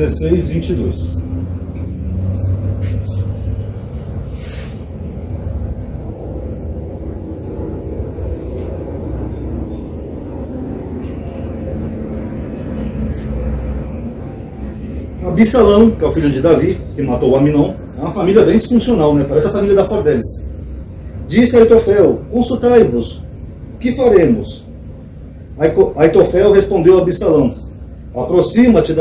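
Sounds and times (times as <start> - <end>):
steady low rumble: 0.0 - 29.0
higher scrape: 4.2 - 5.1.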